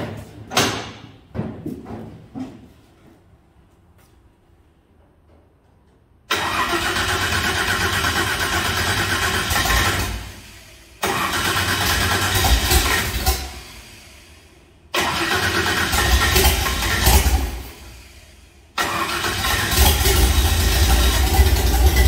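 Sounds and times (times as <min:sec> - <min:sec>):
truck engine starting: 0:06.3 - 0:22.0.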